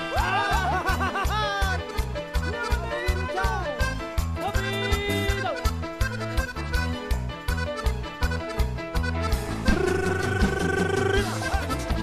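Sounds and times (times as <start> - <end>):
accordion melody: 0.0 - 12.0
bass and drum beat: 0.0 - 12.0.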